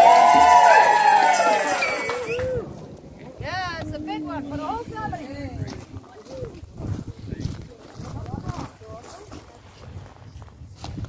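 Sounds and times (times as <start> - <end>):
wind rumble on microphone: 2.3 - 11.0.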